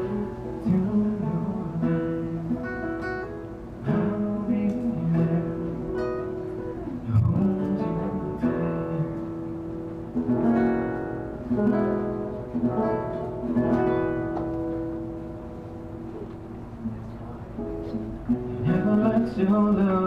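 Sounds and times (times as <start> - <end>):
acoustic guitar chords: 0.0 - 20.0.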